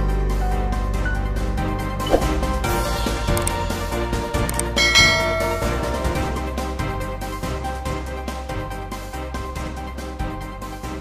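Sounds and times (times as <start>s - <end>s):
background music: 0.0s - 11.0s
bright bell chime: 4.8s - 6.5s.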